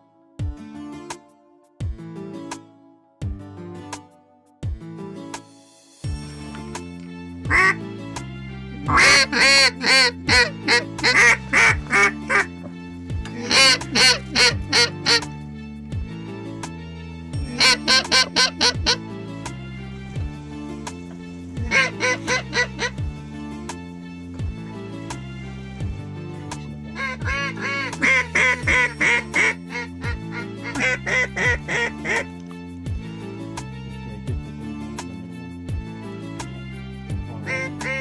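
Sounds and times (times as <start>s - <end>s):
background music with steady beat: 0.0s - 38.0s
duck quacking: 7.5s - 7.8s, 8.9s - 12.6s, 13.3s - 15.3s, 17.5s - 19.0s, 21.6s - 23.0s, 26.9s - 32.3s, 37.4s - 38.0s.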